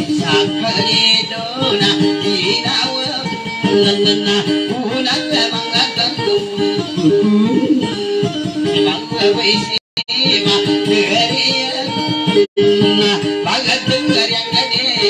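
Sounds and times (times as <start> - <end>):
guitar plucked notes: 0.0 - 15.0.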